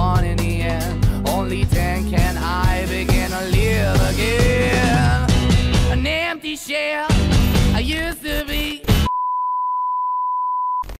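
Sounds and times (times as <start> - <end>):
electronic beep tone: 9.1 - 10.9.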